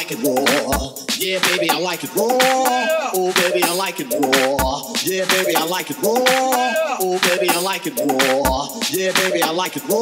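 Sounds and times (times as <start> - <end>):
house music with synth and vocals: 0.0 - 10.0.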